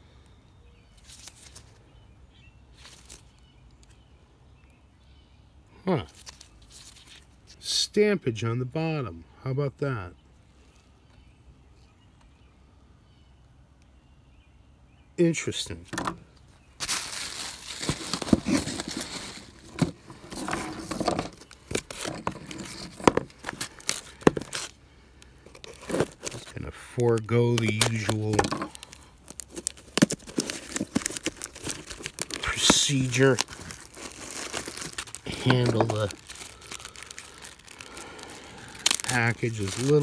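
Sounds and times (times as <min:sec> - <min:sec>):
package tape crinkling: 0:01.0 - 0:01.8, 0:06.2 - 0:07.3, 0:16.8 - 0:40.0.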